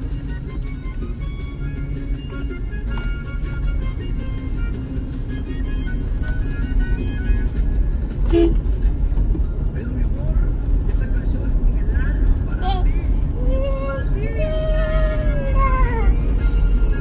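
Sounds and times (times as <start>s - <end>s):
music playing: 0.0s - 17.0s
road rumble inside moving car: 0.0s - 17.0s
young child's voice: 12.6s - 12.9s.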